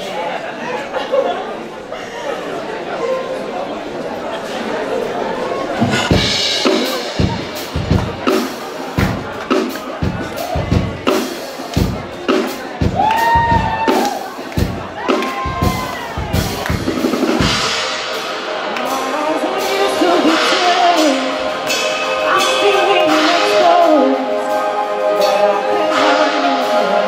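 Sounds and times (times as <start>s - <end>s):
audience chatter: 0.0s - 27.0s
live band playing: 4.8s - 27.0s
held pitched notes: 14.4s - 27.0s.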